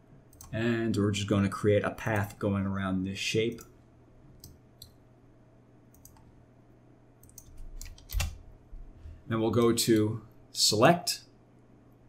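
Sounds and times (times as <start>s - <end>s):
mouse clicks: 4.4s - 5.0s, 5.9s - 6.3s
key presses: 7.2s - 8.4s.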